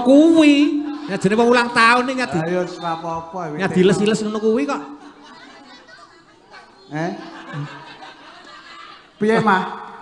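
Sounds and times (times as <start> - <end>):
background chatter of many people: 0.0 - 10.0.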